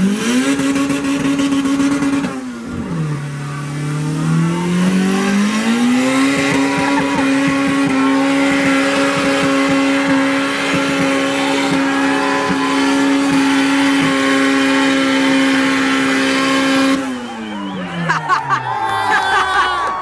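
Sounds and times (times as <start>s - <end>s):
car engine revving high: 0.0s - 18.1s
tyres spinning on wet pavement: 4.8s - 18.2s.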